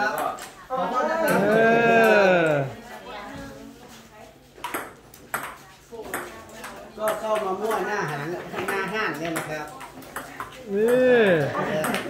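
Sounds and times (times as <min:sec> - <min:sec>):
table tennis ball hits: 0:04.6 - 0:11.1, 0:11.8 - 0:12.0.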